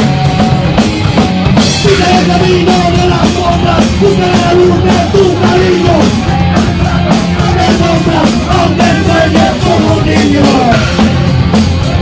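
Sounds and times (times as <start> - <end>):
drum kit: 0.0 - 12.0
punk band playing loudly: 0.0 - 12.0.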